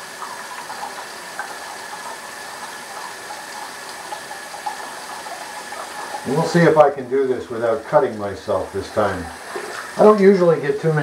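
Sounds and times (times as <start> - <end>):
running tap hiss: 0.0 - 11.0.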